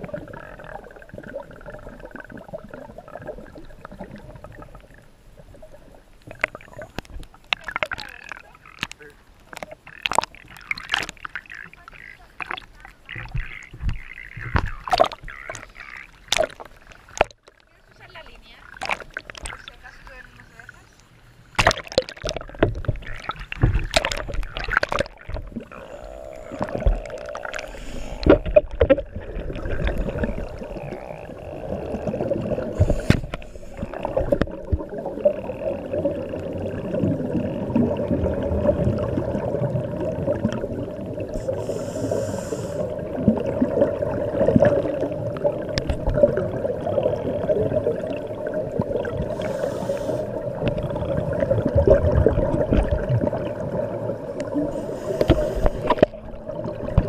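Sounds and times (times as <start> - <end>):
muffled underwater rumble: 0.0 - 57.0
water gurgling: 0.0 - 57.0
water splashes: 0.0 - 57.0.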